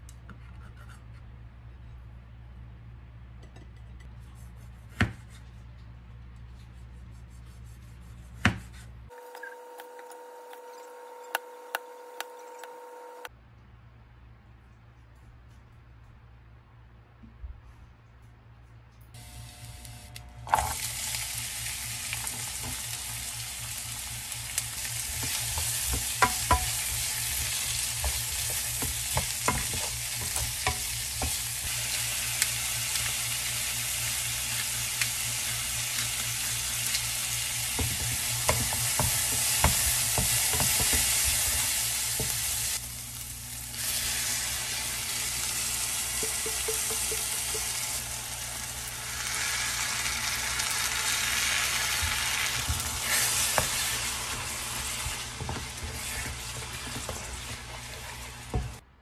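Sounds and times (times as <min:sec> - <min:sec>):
vegetables sizzling in oil: 0:19.2 - 0:58.8.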